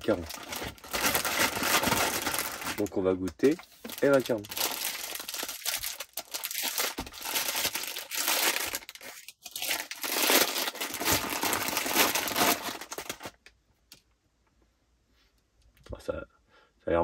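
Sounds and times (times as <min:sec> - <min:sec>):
plastic bag crinkling: 0:00.0 - 0:13.4.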